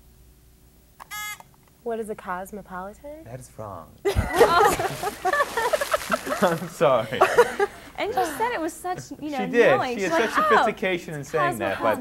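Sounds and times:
electronic buzz-in beep: 1.0s - 1.4s.

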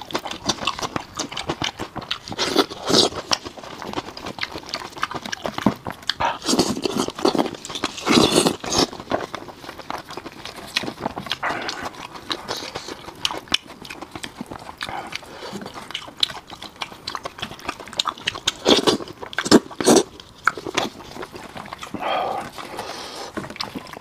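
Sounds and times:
wet chewing and lip-smacking: 0.0s - 24.0s.

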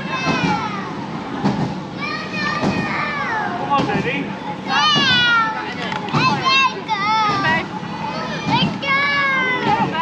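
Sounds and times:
chatter of passers-by: 0.0s - 10.0s.

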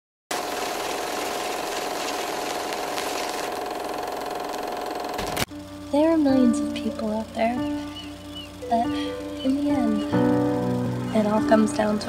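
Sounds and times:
mechanical whirring hum: 0.3s - 12.0s.

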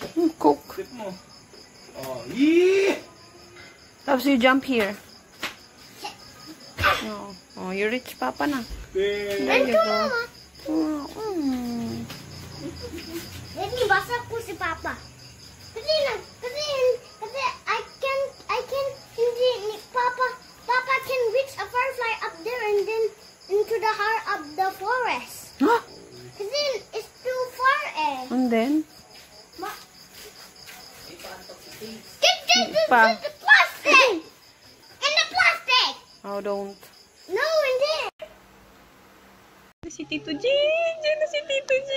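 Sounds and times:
adult's voice: 9.0s - 10.2s
child's voice: 9.4s - 25.6s, 26.4s - 28.3s, 32.2s - 34.4s, 35.0s - 36.2s, 37.3s - 38.2s.

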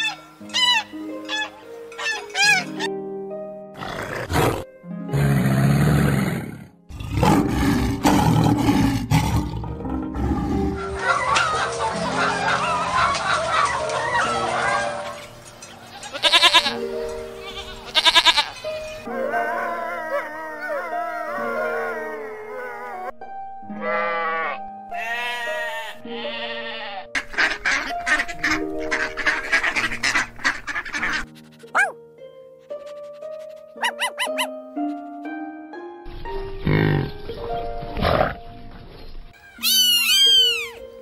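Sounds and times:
geese honking: 0.0s - 2.9s, 10.8s - 16.8s, 23.8s - 31.3s
background music: 0.0s - 41.0s
hens clucking and squawking: 10.7s - 16.8s, 27.2s - 31.9s.

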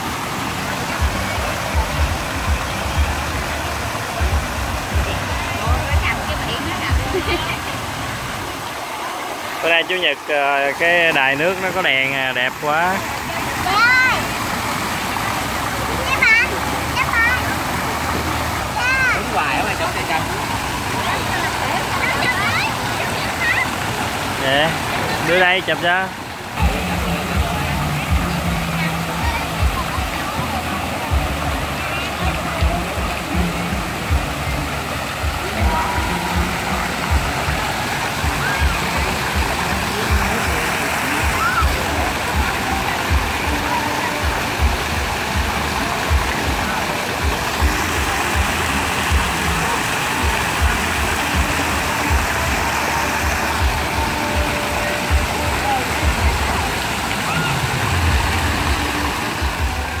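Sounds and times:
fountain water splashing: 0.0s - 60.0s
people talking: 0.0s - 60.0s
music with thumping beat: 1.0s - 7.5s, 26.6s - 60.0s.

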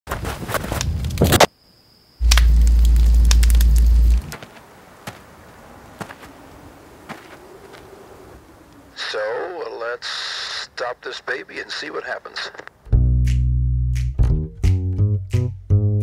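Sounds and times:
low crackle with sharp pops: 0.6s - 1.5s, 2.2s - 12.9s
loud deep low hum: 2.2s - 4.3s.

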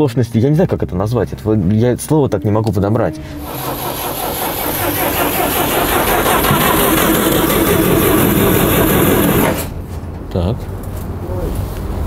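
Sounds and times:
car engine turning over: 3.2s - 10.0s.

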